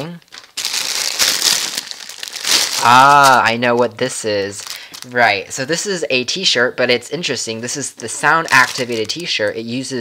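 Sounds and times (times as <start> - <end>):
plastic bag crinkling: 0.0 - 5.5, 8.0 - 10.0.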